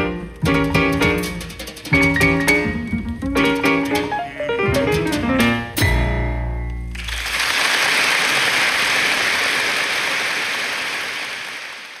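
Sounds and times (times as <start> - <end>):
jazz piano trio chord: 0.0 - 6.9
audience applauding: 6.9 - 12.0.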